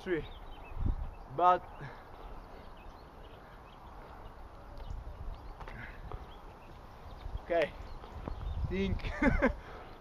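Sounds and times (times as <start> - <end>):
distant birds chirping: 0.0 - 10.0.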